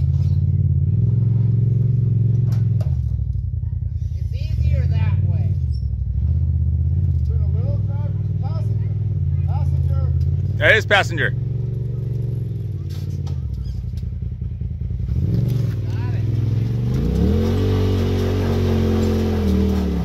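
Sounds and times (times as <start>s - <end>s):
vehicle engine running: 0.0s - 20.0s
faint voices talking: 10.6s - 11.3s.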